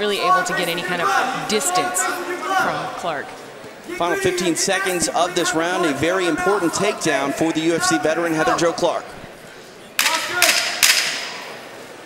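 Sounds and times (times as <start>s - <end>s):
sharp wooden clacks echoing: 10.0s - 11.5s.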